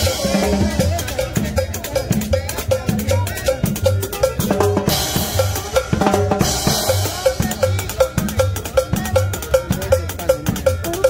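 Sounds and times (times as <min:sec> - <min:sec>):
cowbell strokes: 0:00.0 - 0:11.0.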